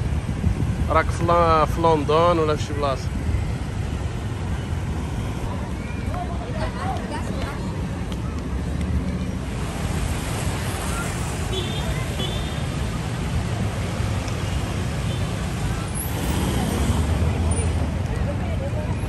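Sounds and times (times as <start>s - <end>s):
road traffic rumble: 0.0s - 19.0s
voices of passers-by: 0.0s - 19.0s.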